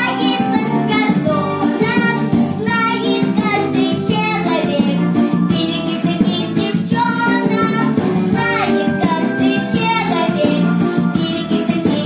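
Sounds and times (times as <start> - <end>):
girl singing pop song: 0.0 - 12.0
instrumental backing music: 0.0 - 12.0.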